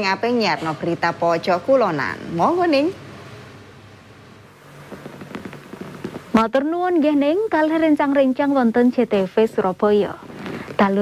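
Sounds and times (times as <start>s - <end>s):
faint steady hiss: 0.0s - 11.0s.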